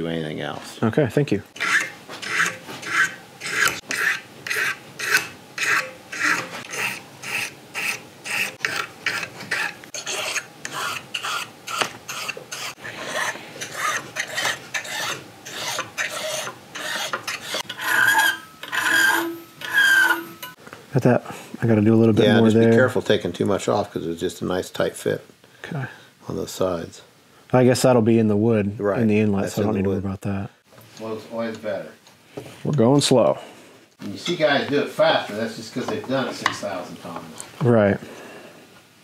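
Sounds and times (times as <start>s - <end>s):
hand file rasping on brass: 1.6s - 20.6s.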